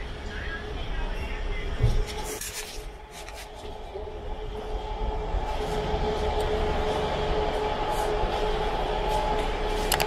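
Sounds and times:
heavy vehicle drone: 0:02.9 - 0:10.0.

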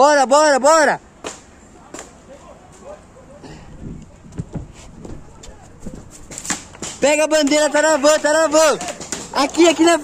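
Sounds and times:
distant shouting: 0:05.1 - 0:10.0.

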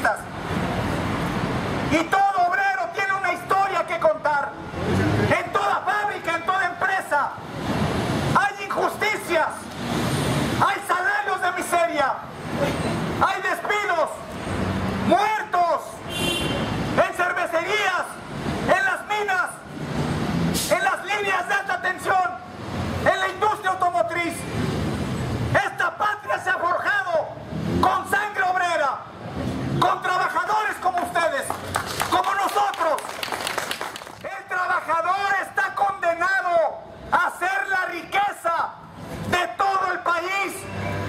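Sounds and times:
man speaking through megaphone: 0:00.0 - 0:00.4, 0:01.9 - 0:07.5, 0:08.3 - 0:09.7, 0:10.6 - 0:12.4, 0:13.2 - 0:14.4, 0:15.0 - 0:19.7, 0:20.6 - 0:24.5, 0:25.5 - 0:29.1, 0:29.7 - 0:33.2, 0:34.2 - 0:40.8
passing road traffic: 0:00.0 - 0:41.0.

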